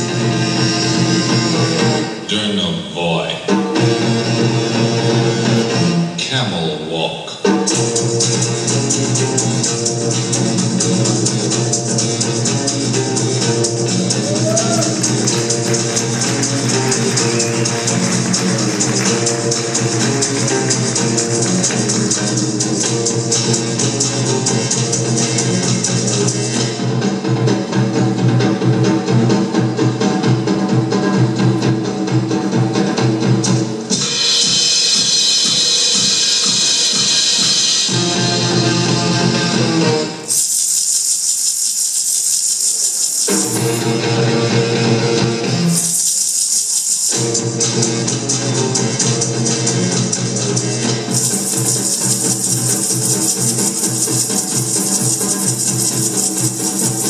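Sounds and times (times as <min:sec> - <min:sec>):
big band music: 0:00.0 - 0:40.3
shaker rattling: 0:14.4 - 0:22.1, 0:40.3 - 0:43.9, 0:45.7 - 0:47.4, 0:51.1 - 0:57.0.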